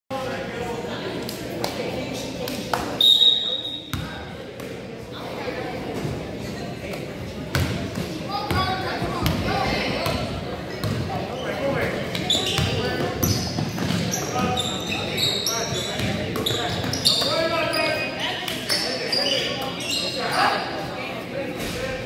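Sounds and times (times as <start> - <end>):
voices in a large gym: 0.1 - 22.0
sneakers squeaking on court: 3.1 - 4.7, 7.5 - 20.8.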